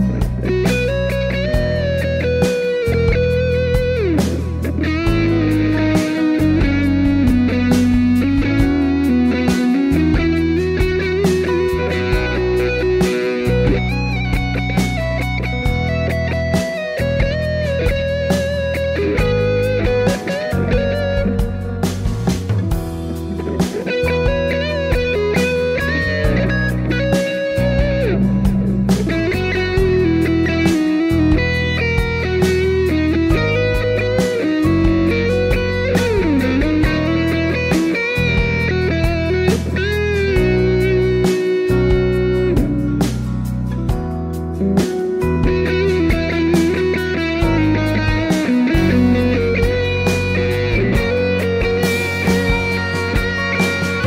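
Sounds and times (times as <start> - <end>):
bass and drums backing track: 0.0 - 54.0
distorted electric guitar lead: 0.0 - 54.0.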